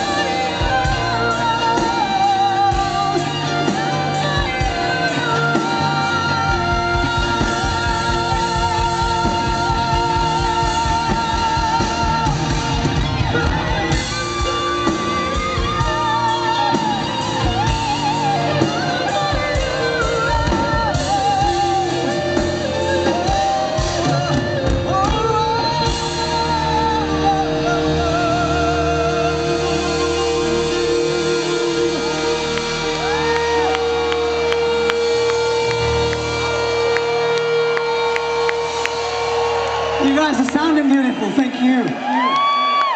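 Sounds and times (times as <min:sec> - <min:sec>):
crowd cheering and whooping: 0:00.0 - 0:42.9
electric guitar melody: 0:00.0 - 0:42.9
lead singer's voice: 0:00.0 - 0:42.9
live rock band playing: 0:00.0 - 0:42.9.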